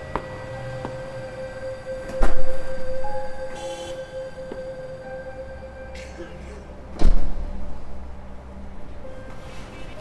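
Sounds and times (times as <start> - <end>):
soundtrack drone: 0.0 - 10.0.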